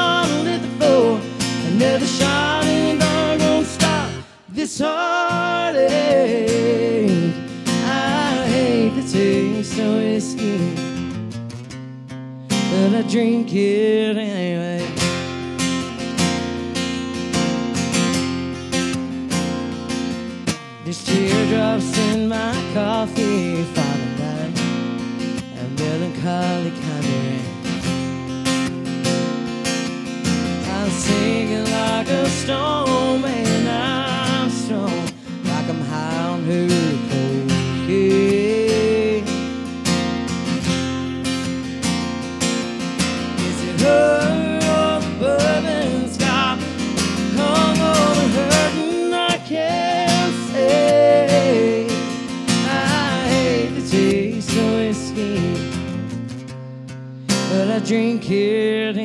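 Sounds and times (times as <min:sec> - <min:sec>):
woman singing country song: 0:00.0 - 0:11.1, 0:12.5 - 0:15.4, 0:20.8 - 0:24.7, 0:25.4 - 0:27.5, 0:30.6 - 0:39.7, 0:43.2 - 0:56.0, 0:57.4 - 0:59.0
acoustic guitar strumming: 0:00.0 - 0:59.0.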